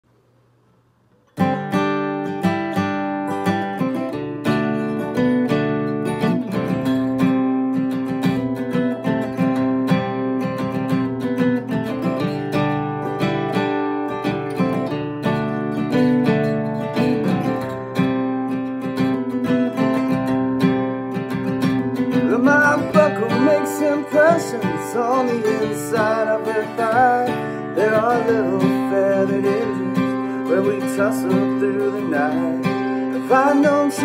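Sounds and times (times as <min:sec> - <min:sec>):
acoustic guitar picking and strumming: 0:01.1 - 0:34.0.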